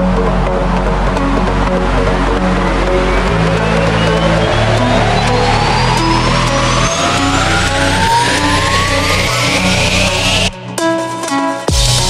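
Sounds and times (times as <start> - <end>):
rising noise sweep: 0.0 - 10.6
rising synth tone: 0.0 - 10.6
held synth chords: 0.0 - 12.0
slowed electronic music: 0.0 - 12.0.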